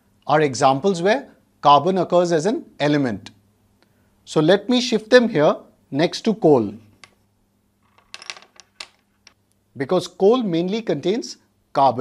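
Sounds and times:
objects clicking on wooden table: 7.8 - 9.4.

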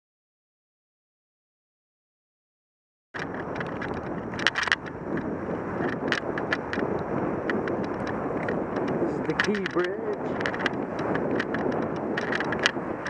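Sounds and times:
bicycle clicks and rattles: 3.2 - 13.0
wind buffeting microphone: 3.2 - 13.0.

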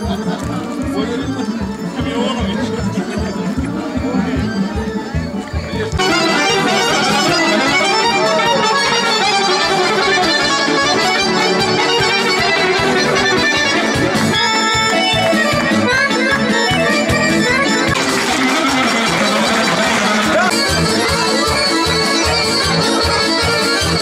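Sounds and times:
accordion-led band dance music: 0.0 - 24.0.

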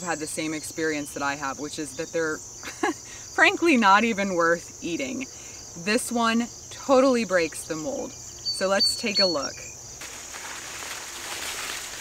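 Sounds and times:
crickets chirping: 0.0 - 12.0
corn leaves rustling: 10.0 - 12.0.

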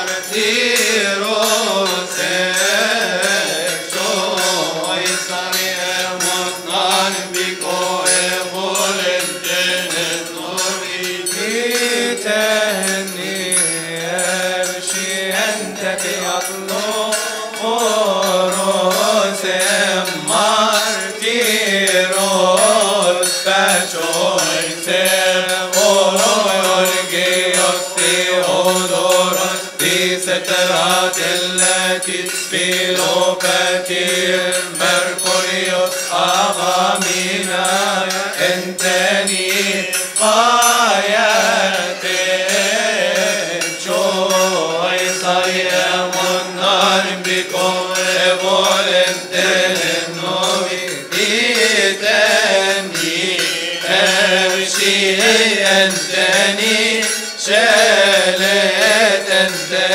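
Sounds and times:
men chanting a hymn in unison: 0.0 - 59.9.

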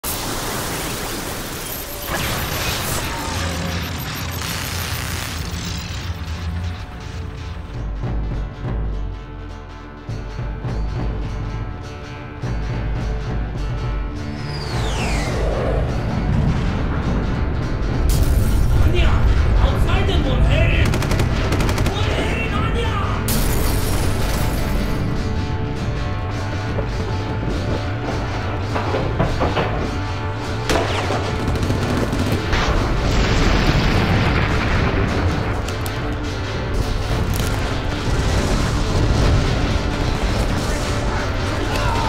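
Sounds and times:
machine-gun fire: 0.1 - 7.1, 20.8 - 22.5, 30.7 - 35.8
steady low rumble: 13.0 - 22.0.

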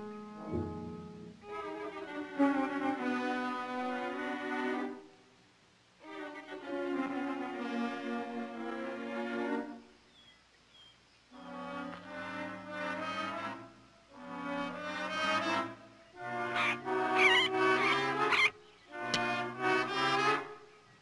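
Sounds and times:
orchestral brass and strings: 0.0 - 5.2, 6.0 - 10.0, 11.4 - 20.7.

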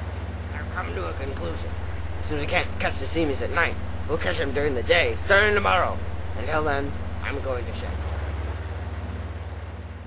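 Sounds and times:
diesel locomotive engine idling: 0.0 - 10.0.

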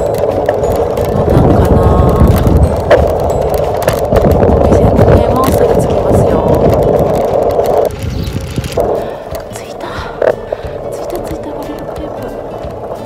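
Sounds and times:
background music: 0.0 - 13.0
bicycle rolling and wind noise: 0.0 - 13.0
scattered clicks: 0.0 - 13.0.

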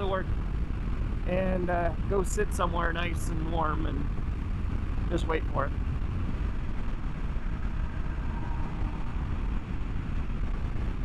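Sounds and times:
road noise: 0.0 - 11.0
wind rumble on microphone: 0.0 - 11.0.

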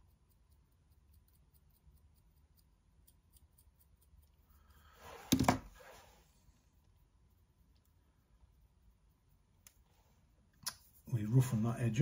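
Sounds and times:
tool scratching clay: 0.0 - 4.6.

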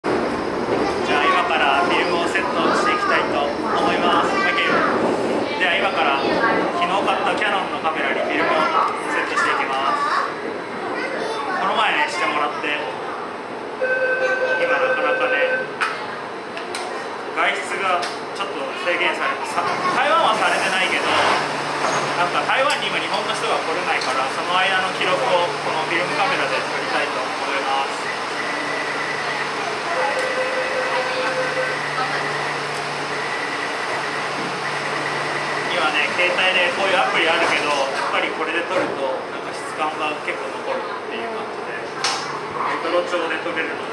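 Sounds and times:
train rumble and hiss: 0.0 - 43.9.

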